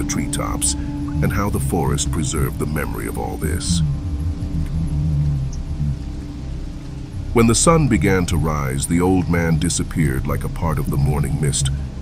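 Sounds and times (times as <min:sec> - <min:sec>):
dark ambient drone music: 0:00.0 - 0:12.0.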